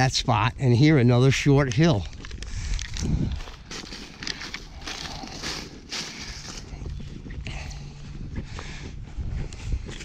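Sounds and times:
footsteps crunching dry leaves: 1.9 - 8.4.

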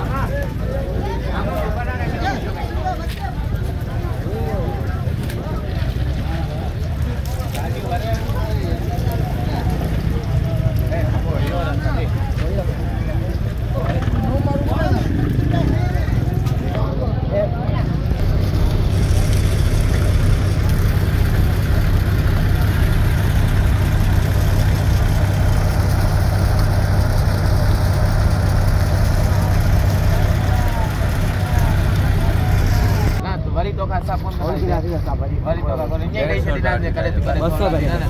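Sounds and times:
crowd talking: 0.0 - 38.0
engine idling: 17.8 - 33.2.

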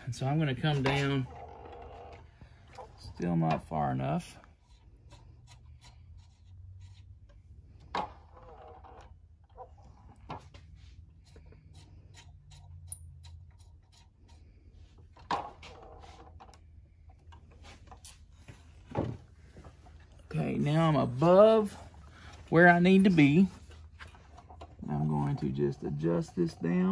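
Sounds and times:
hands clicking and tapping saw mechanism: 11.1 - 14.6.

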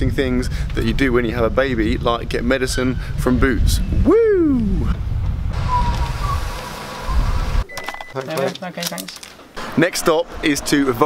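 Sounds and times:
wind on microphone: 0.0 - 7.6
passing traffic: 4.9 - 7.7, 9.4 - 11.0
faint thin whistling tone: 5.6 - 6.5.

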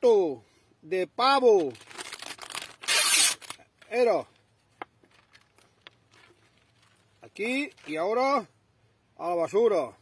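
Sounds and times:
plastic packet tearing: 1.6 - 4.0
plastic packet crinkling: 1.6 - 8.0.

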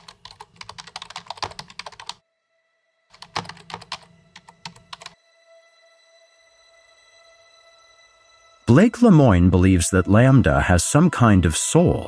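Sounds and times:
computer keyboard typing: 0.0 - 2.2, 3.2 - 5.2.

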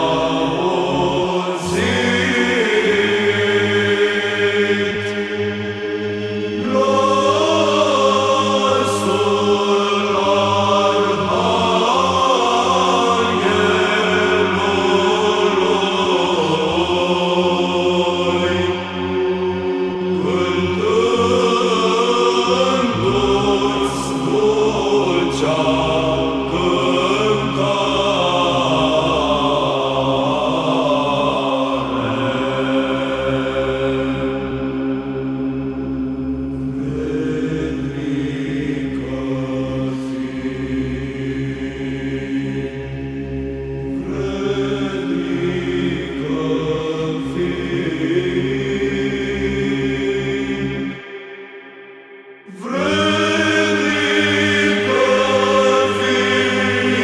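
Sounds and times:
held vocal drone: 0.0 - 57.0
voices chanting a melody: 0.0 - 57.0.

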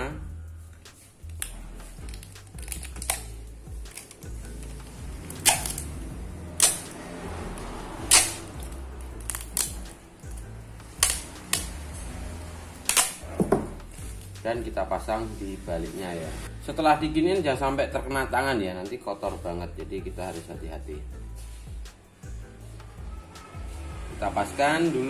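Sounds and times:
packing tape ripping off film: 0.9 - 6.0, 8.0 - 11.8, 12.8 - 13.4.

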